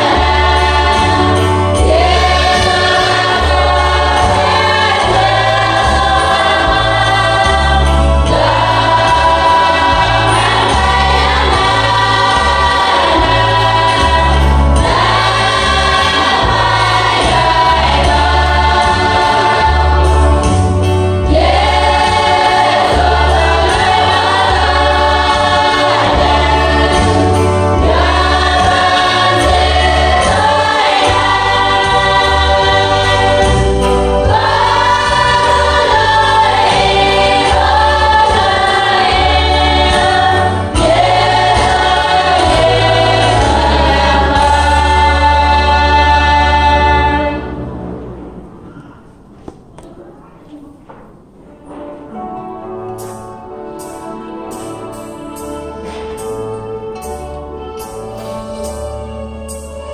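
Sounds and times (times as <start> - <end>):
low bass accompaniment: 0.0 - 48.7
women's choir singing a hymn: 0.0 - 48.8.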